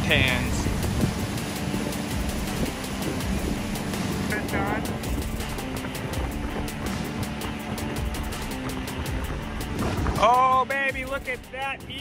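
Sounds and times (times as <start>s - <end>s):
fast river water rushing: 0.0s - 11.5s
quiet background music: 0.0s - 12.0s
wind buffeting microphone: 0.0s - 12.0s.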